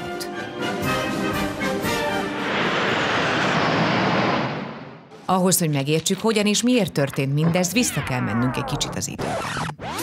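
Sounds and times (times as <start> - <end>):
music: 0.0 - 3.0
jet aircraft flying over: 1.0 - 5.1.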